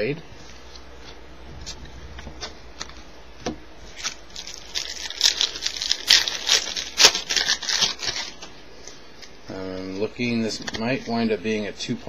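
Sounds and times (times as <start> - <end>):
wrapper crinkling and tearing: 3.9 - 11.2.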